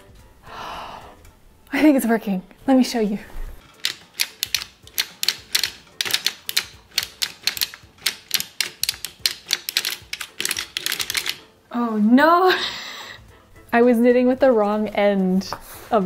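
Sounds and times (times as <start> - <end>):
sock knitting machine clicking: 3.6 - 11.5.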